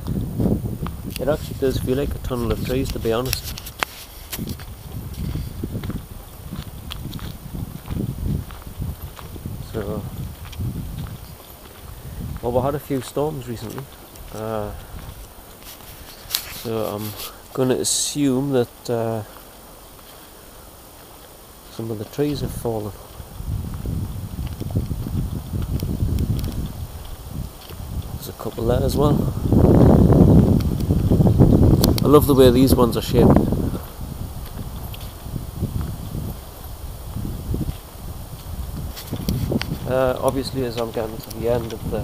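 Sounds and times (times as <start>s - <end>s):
wind on microphone: 0.0s - 17.6s, 21.8s - 42.0s
footsteps on woodland path: 0.0s - 42.0s
camera handling noise: 15.6s - 17.3s.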